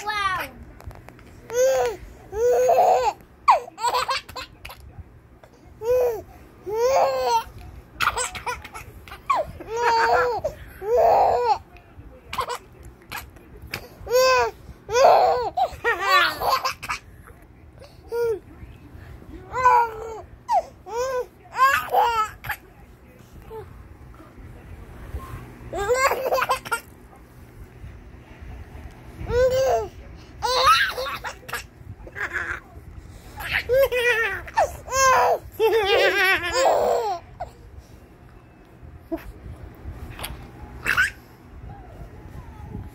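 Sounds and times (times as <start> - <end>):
baby laughing: 1.6 - 4.8, 5.8 - 11.6, 14.1 - 17.0, 19.5 - 22.6, 25.8 - 26.9, 29.3 - 32.6.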